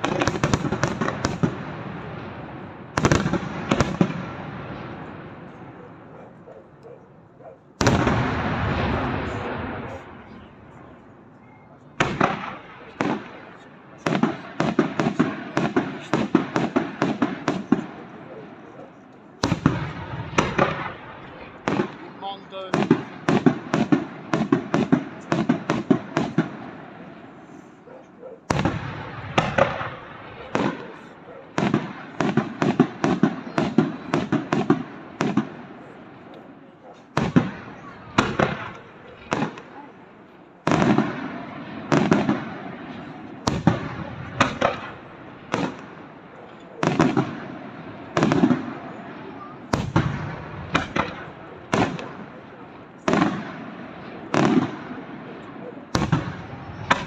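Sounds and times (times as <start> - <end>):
fireworks bursting with crackle: 0.0 - 6.1, 7.8 - 27.9, 28.5 - 57.0.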